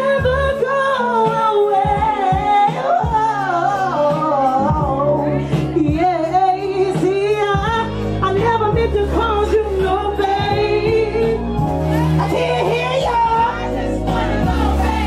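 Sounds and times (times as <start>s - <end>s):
backing music with bass: 0.0s - 15.0s.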